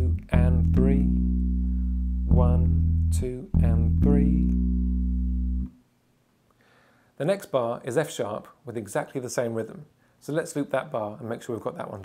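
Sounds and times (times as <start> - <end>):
bass guitar low note: 0.0 - 5.8.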